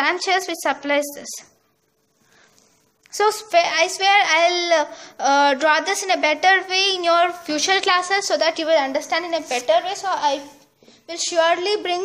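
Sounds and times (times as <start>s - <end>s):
person speaking: 3.0s - 12.0s
pen rustling on paper: 9.2s - 10.0s.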